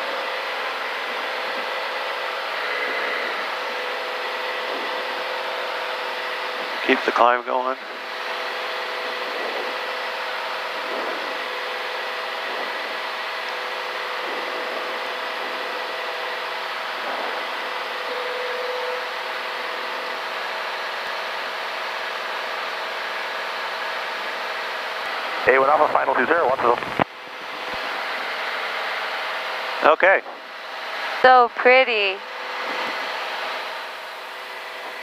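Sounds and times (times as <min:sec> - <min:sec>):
aircraft engine and propeller drone: 0:00.0 - 0:35.0.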